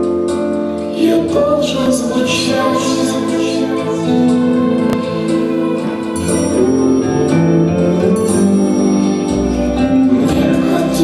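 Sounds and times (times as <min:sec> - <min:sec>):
instrumental backing track: 0:00.0 - 0:11.0
man and girls singing: 0:00.9 - 0:04.6, 0:10.2 - 0:11.0.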